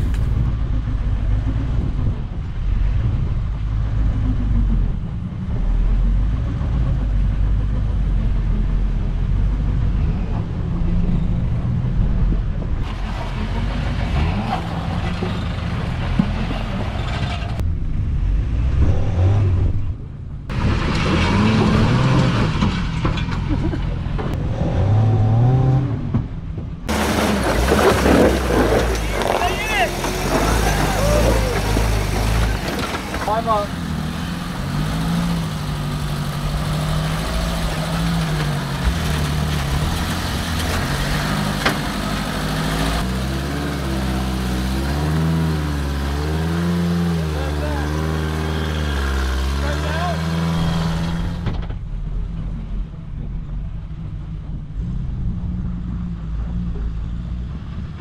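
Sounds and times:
engine revving: 0:00.0 - 0:52.5.

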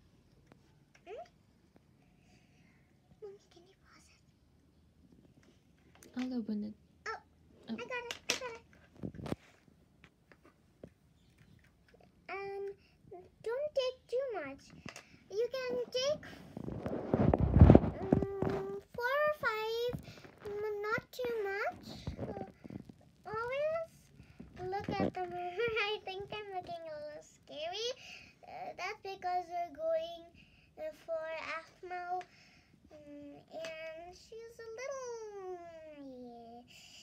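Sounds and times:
rustling and knocks: 0:15.8 - 0:25.8
girl singing wordlessly: 0:17.8 - 0:22.6.

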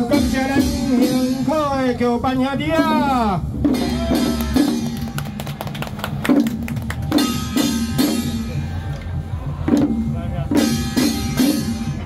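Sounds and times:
deep bass: 0:00.0 - 0:05.4, 0:06.0 - 0:12.0
drums beating: 0:00.0 - 0:12.0
rapid clicking percussion: 0:03.7 - 0:08.3.

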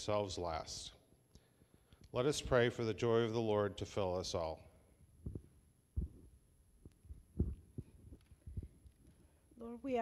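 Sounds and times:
faint low thumps: 0:05.1 - 0:08.8.

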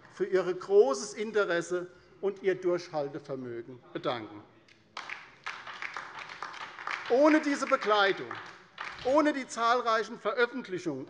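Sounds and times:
applause: 0:05.0 - 0:09.6.

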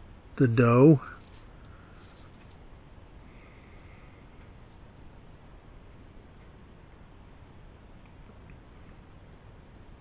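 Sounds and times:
low room hum: 0:00.0 - 0:10.0
paper rustling: 0:01.0 - 0:02.6, 0:03.4 - 0:05.0.

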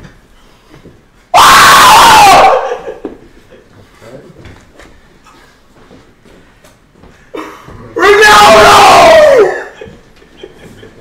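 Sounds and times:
young man screaming: 0:01.3 - 0:03.0, 0:08.0 - 0:09.8.

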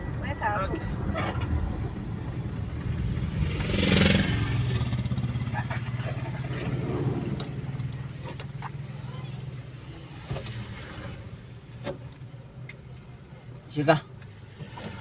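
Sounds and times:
passing traffic rush: 0:00.0 - 0:15.0
vehicle engine and road noise: 0:00.0 - 0:15.0.

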